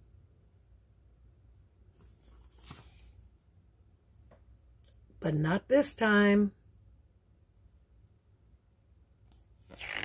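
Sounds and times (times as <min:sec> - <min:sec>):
paper pages rustling: 0:02.0 - 0:03.2.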